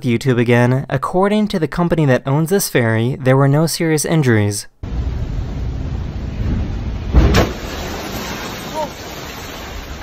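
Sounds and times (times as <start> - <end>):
wave crashing into windows: 4.8 - 10.0.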